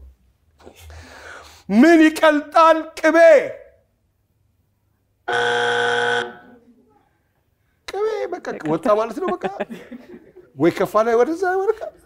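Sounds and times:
game show buzzer: 5.3 - 6.5.

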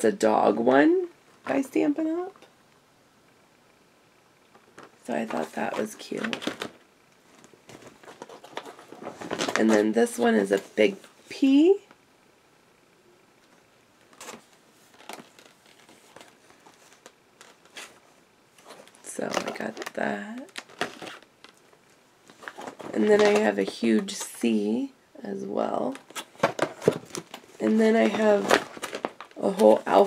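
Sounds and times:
plastic case clicks and rustles: 4.6 - 6.8, 22.3 - 24.2, 26.0 - 29.7
plastic packaging crinkling: 4.7 - 10.0, 14.0 - 24.4, 26.0 - 30.0.

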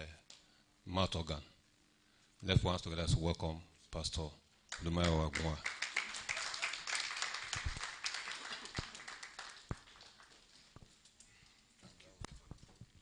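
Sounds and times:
audience clapping: 4.7 - 10.8.

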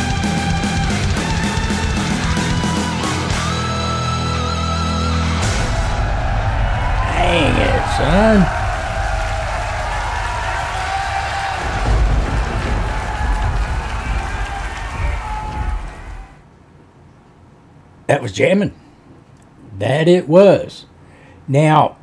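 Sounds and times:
crowd cheering and applauding: 5.4 - 16.4
person shouting: 7.0 - 8.6.

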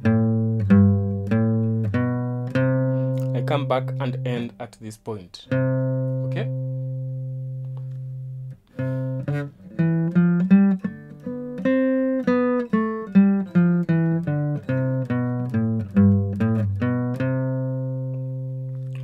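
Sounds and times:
acoustic guitar playing a scale: 0.0 - 19.0.

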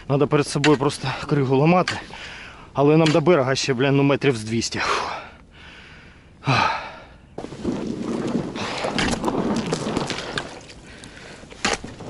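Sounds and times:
river ice cracking and crunching: 7.4 - 12.0.

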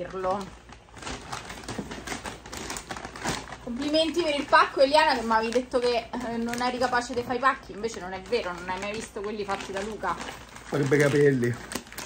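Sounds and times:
wrapping paper crinkling: 0.0 - 12.0.

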